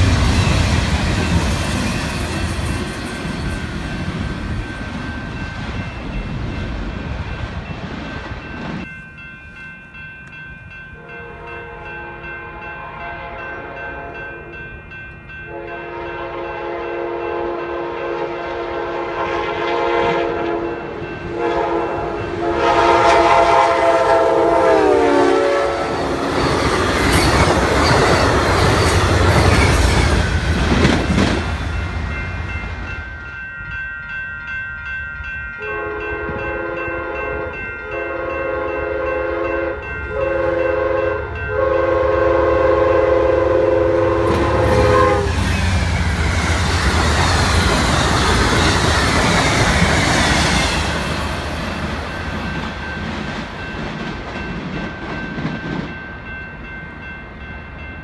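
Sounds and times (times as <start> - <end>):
train rolling by: 0.0 - 58.0
locomotive horn: 11.0 - 14.6, 15.5 - 26.3, 35.6 - 45.5.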